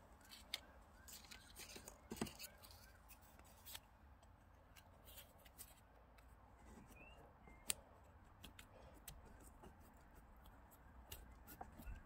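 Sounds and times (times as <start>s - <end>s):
fingers handling a leaf: 0.1s - 12.0s.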